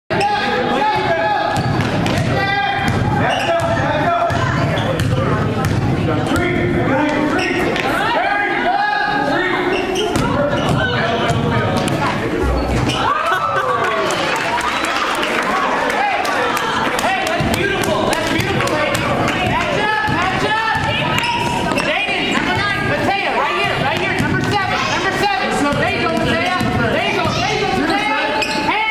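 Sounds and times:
voices of players and spectators: 0.1 - 28.9
basketball bouncing on gym floor: 1.5 - 6.6, 10.1 - 12.0, 17.3 - 22.8, 25.6 - 27.5.

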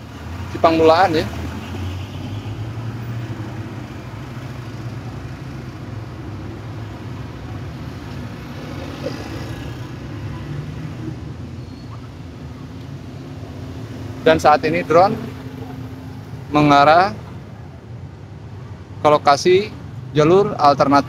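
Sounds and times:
congested road traffic: 0.0 - 21.0.

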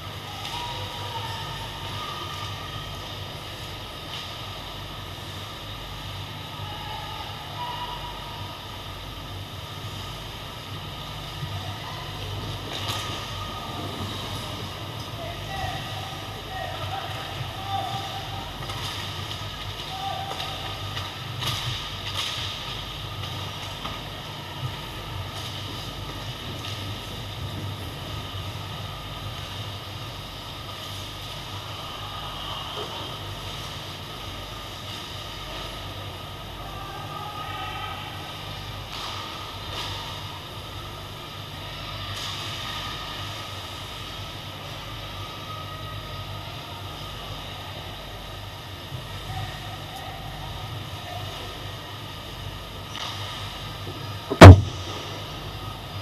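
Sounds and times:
low hum and hiss: 0.0 - 56.0
sharp knocks: 54.3 - 54.8.

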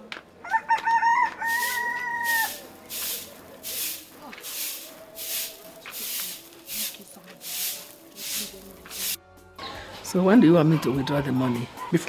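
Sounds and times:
rooster crowing: 0.4 - 2.6.

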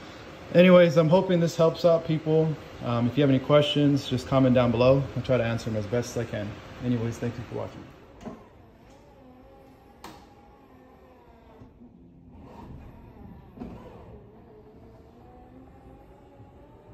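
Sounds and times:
liftgate motor whine: 0.0 - 16.9.

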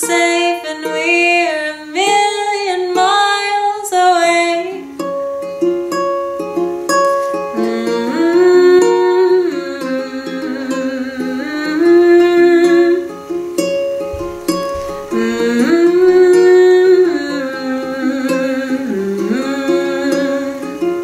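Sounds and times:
woman's wordless singing: 0.0 - 5.0, 7.5 - 13.3, 14.4 - 21.0
ukulele playing: 0.0 - 21.0.

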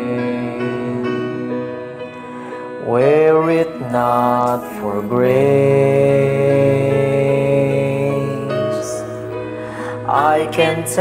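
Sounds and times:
man and woman singing: 0.0 - 1.7, 9.8 - 11.0.

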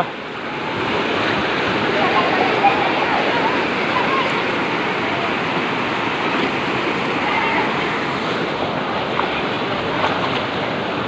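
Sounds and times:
floodwater rushing over street: 0.0 - 11.0.

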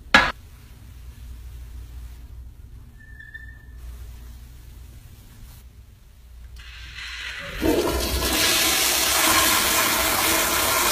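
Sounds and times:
toilet flush valve hissing: 6.6 - 10.9.

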